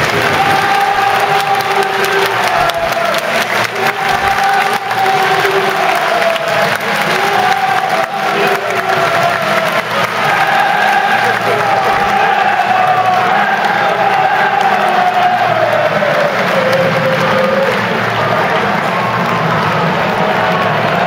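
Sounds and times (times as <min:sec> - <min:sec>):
crowd cheering and clapping: 0:00.0 - 0:21.0.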